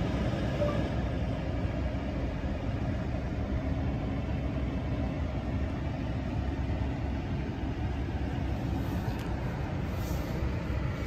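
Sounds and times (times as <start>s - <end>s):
pickup engine idling: 0.0s - 11.0s.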